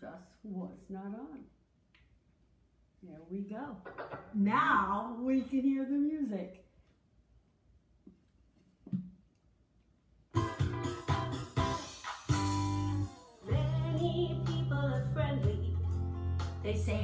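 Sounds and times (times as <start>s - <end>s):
children's song over a loudspeaker: 13.4s - 15.9s, 16.6s - 17.0s.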